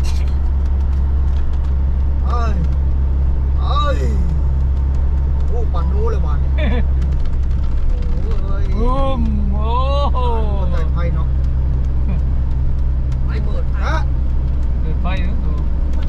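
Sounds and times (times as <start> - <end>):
car road and engine rumble: 0.0 - 16.0.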